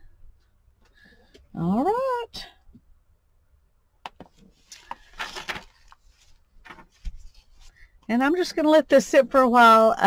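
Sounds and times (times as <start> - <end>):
paper pages rustling: 4.2 - 7.9.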